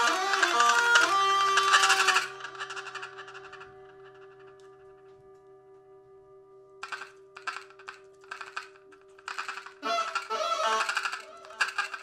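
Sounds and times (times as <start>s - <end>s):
improvised reeds horns and percussion: 0.0s - 3.6s, 9.3s - 12.0s.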